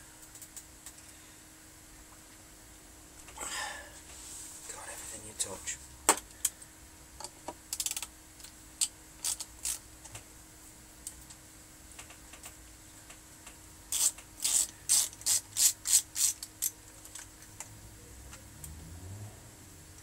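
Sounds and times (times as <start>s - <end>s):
screwdriver ratchet clicks: 13.9s - 16.5s.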